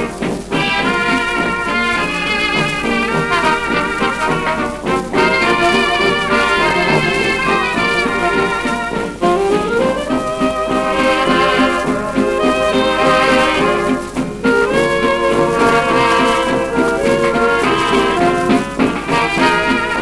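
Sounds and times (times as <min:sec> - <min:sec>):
dance band on old record: 0:00.0 - 0:20.0
trumpets and trombone: 0:00.0 - 0:20.0.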